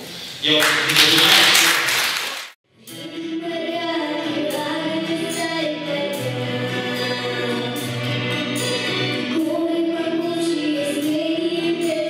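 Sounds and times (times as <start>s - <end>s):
applause: 0.4s - 2.6s
song with choir-like voices: 2.7s - 12.0s.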